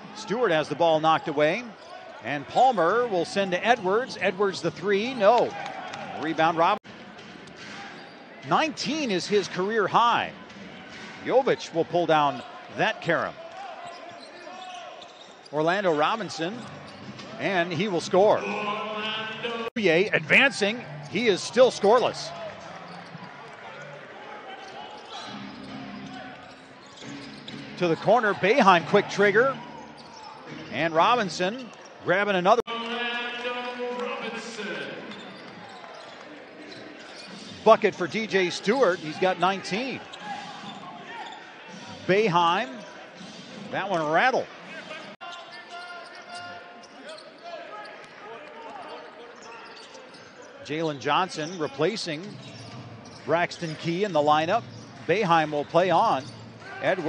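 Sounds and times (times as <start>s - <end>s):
murmur of arena crowd: 0.0s - 57.0s
shoe squeaks: 7.7s - 8.3s, 13.7s - 15.6s, 16.4s - 17.6s, 24.5s - 31.9s, 34.6s - 37.8s, 38.8s - 44.0s, 44.7s - 48.0s, 48.6s - 57.0s.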